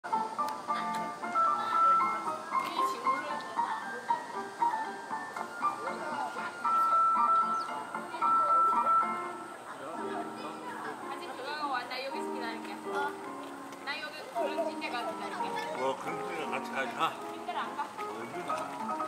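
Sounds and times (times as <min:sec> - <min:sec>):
faint voices: 0:00.1 - 0:19.0.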